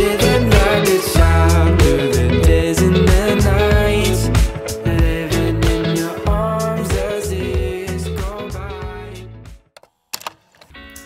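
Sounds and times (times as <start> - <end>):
acoustic guitar music: 0.0 - 9.3
background song: 0.0 - 9.7.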